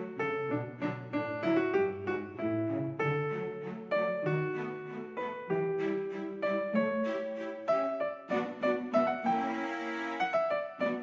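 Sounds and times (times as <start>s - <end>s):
gentle piano music: 0.0s - 11.0s.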